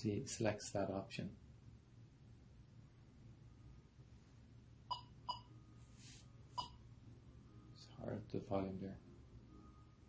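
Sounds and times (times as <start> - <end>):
low steady hum: 0.0 - 10.0
short electronic beeps: 4.9 - 5.6
soft breathy hiss: 5.8 - 6.4.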